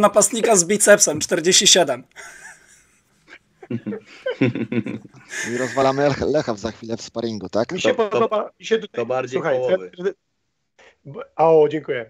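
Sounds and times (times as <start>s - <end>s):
men laughing softly: 2.1s - 6.9s.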